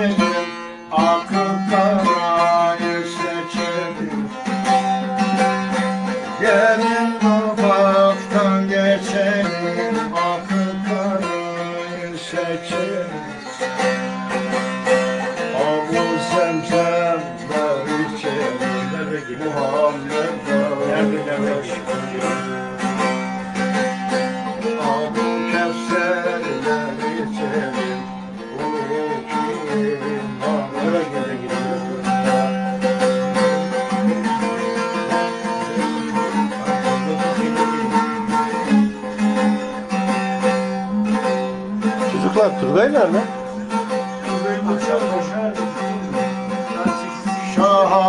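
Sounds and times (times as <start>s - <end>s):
long-necked lute strumming: 0.0s - 48.0s.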